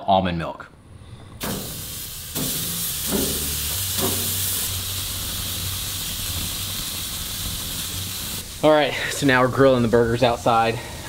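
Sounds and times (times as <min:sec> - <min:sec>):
burger patties sizzling on grill: 0:01.4 - 0:11.0.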